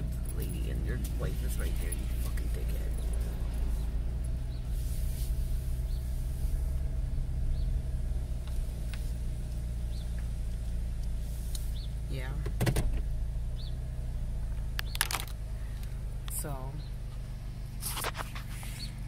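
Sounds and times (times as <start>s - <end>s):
car engine hum inside cabin: 0.0s - 19.0s.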